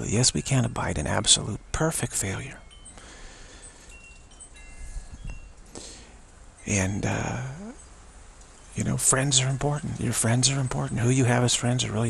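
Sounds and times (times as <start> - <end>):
faint chimes ringing: 0.0 - 12.0
low background hiss: 0.0 - 12.0.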